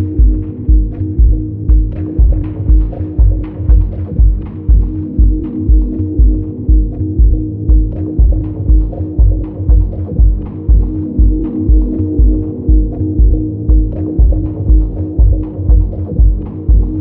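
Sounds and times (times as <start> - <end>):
kick drum: 0.0 - 17.0
percussion ticks: 0.0 - 17.0.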